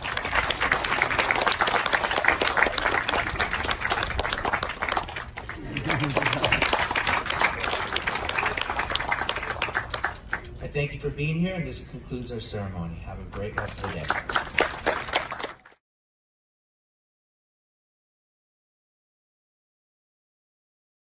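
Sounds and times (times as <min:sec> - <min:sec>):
crowd applauding: 0:00.0 - 0:10.6, 0:13.4 - 0:15.8.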